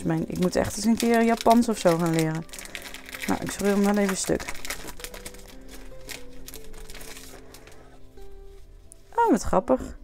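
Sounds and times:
paper packet tearing: 0.0 - 7.9
soft background music: 0.0 - 10.0.

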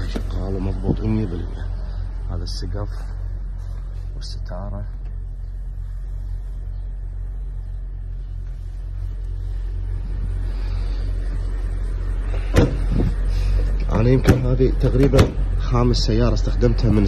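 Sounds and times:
car engine idling: 0.0 - 17.0.

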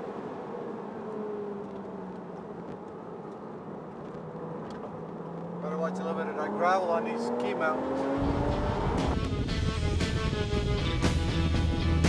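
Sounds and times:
car engine cruising: 0.0 - 12.0
road and wind noise: 0.0 - 12.0.

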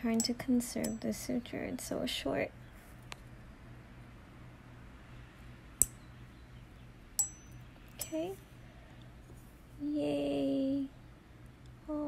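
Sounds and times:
metallic clicks of needle holder: 0.0 - 1.2, 7.2 - 8.3
faint steady hum: 0.0 - 12.0.

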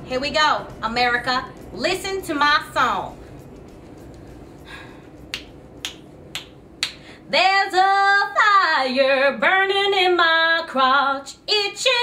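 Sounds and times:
finger snaps: 5.2 - 7.1.

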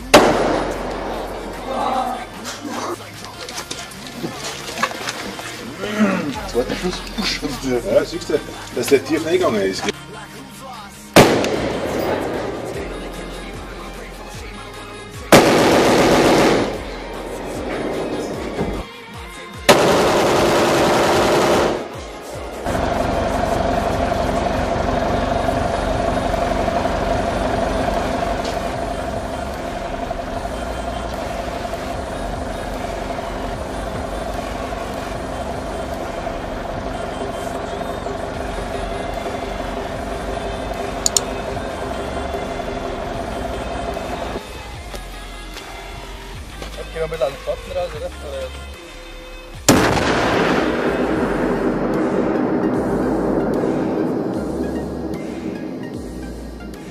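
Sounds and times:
automatic gunfire: 0.1 - 1.7, 11.2 - 13.3, 15.3 - 17.0, 19.7 - 27.3, 49.7 - 51.5.

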